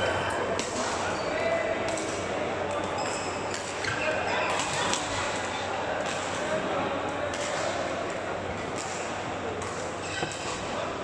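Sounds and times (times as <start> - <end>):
murmur of voices: 0.0 - 11.0
shoe squeaks on court floor: 10.0 - 10.6.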